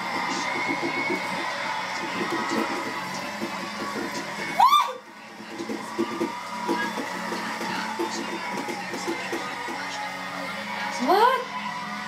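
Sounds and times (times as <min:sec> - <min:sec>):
background music: 0:00.0 - 0:12.0
person talking on television: 0:10.7 - 0:11.5.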